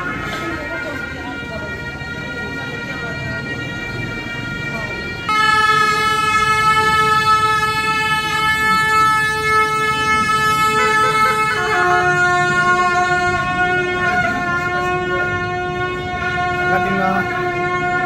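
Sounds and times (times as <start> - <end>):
double-reed shawms playing held notes: 0.0 - 18.0.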